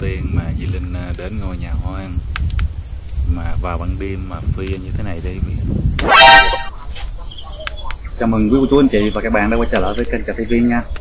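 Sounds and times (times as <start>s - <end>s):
crickets chirping: 0.0s - 11.0s
loud buzzy tone: 6.0s - 6.7s.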